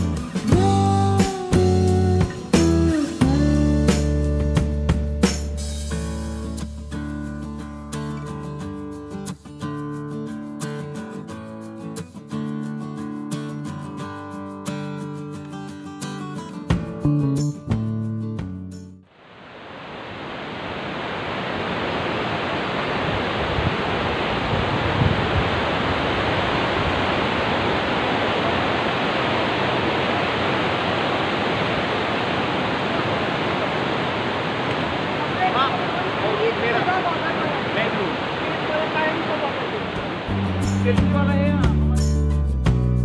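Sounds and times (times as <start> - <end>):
river rushing over rocks: 19.1 - 41.3.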